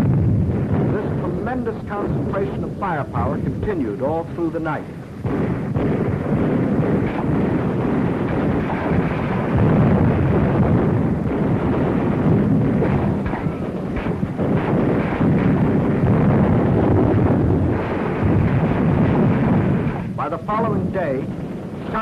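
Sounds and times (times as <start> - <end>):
rumbling shellfire and explosions: 0.0 - 22.0
sharp blasts: 0.0 - 22.0.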